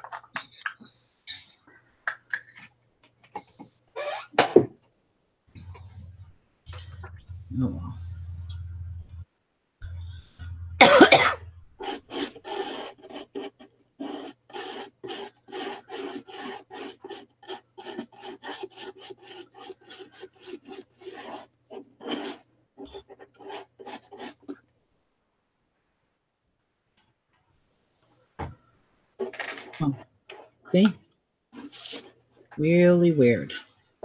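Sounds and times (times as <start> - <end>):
rasping rubbing strokes: 9.8 - 24.6
person coughing: 10.8 - 11.5.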